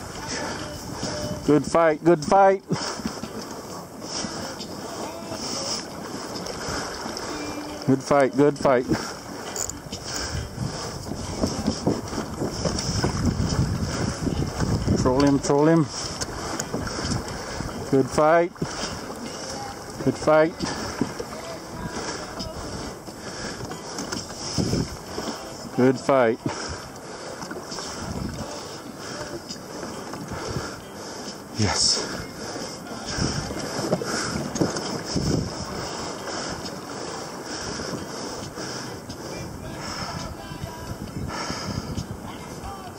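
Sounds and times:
wind on microphone: 0:00.0 - 0:02.2, 0:02.8 - 0:42.9
water against kayak hull: 0:00.0 - 0:42.9.

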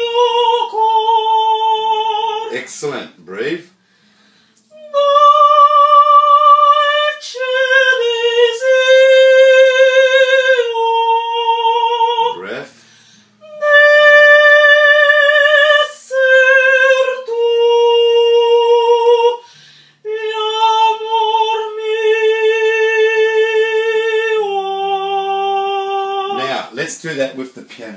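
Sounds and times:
person singing classical legato: 0:00.0 - 0:03.6, 0:04.7 - 0:26.7.

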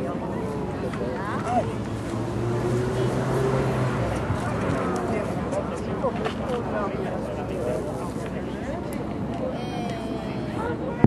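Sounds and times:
people talking: 0:00.0 - 0:01.9, 0:02.6 - 0:11.0.

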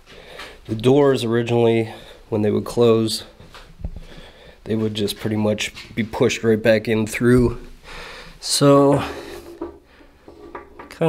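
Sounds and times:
wood rubbing and knocking on wood: 0:09.4 - 0:11.0.

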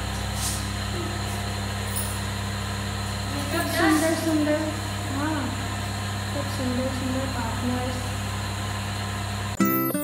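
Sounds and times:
music with plucked guitar notes: 0:09.6 - 0:10.0.

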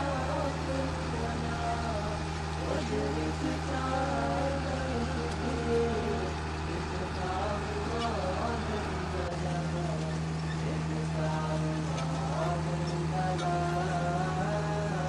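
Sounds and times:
harvesting machine engine drone: 0:00.0 - 0:15.0.

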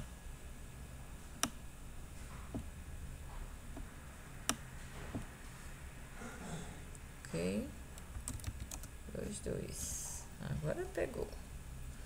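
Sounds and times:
keyboard keys clicking: 0:08.0 - 0:08.9.

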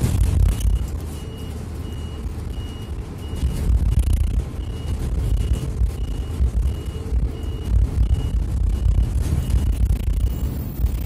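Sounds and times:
bus engine rumble: 0:00.0 - 0:11.0
high electronic beeps: 0:00.1 - 0:11.0.

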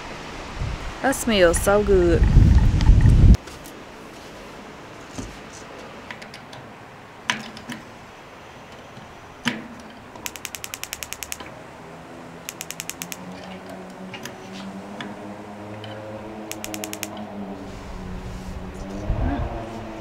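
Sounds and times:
sharp click: 0:10.2 - 0:11.5, 0:12.5 - 0:13.3, 0:16.5 - 0:17.2
spark igniter ticking: 0:10.3 - 0:11.5, 0:12.5 - 0:13.2, 0:16.5 - 0:17.1.

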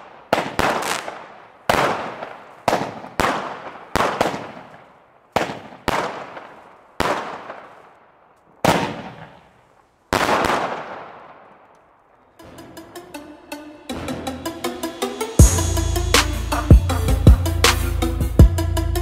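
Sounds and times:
firework bangs: 0:00.0 - 0:07.9, 0:08.6 - 0:11.4.

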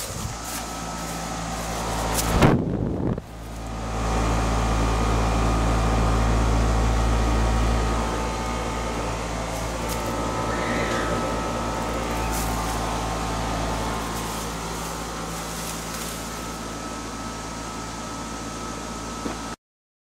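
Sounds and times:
compressor humming: 0:00.0 - 0:19.6
condenser fan air noise: 0:00.0 - 0:19.6.

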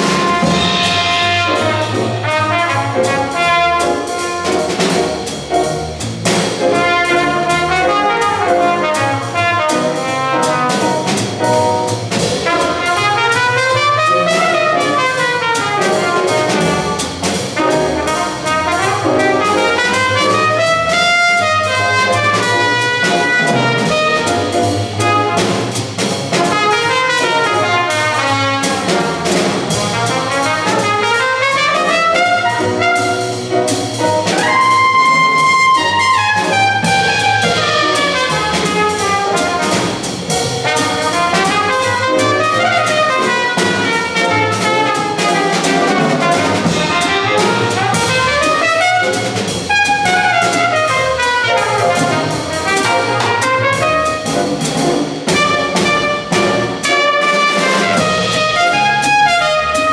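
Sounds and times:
trumpet solo: 0:00.0 - 0:05.0, 0:06.6 - 0:11.2, 0:12.4 - 0:25.6, 0:26.3 - 0:59.9
drums with cymbal: 0:00.0 - 0:59.9
jazz bass: 0:00.0 - 0:59.9
piano accompaniment: 0:00.0 - 0:59.9.

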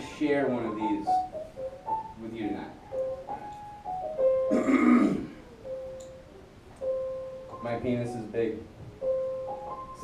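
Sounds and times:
soft piano notes: 0:00.0 - 0:10.0
person making throat noise: 0:04.5 - 0:05.4.

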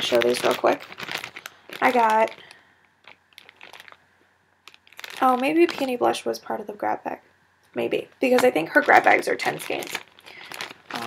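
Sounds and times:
plastic bag crinkling: 0:00.0 - 0:04.0, 0:04.6 - 0:06.4, 0:08.2 - 0:11.0.

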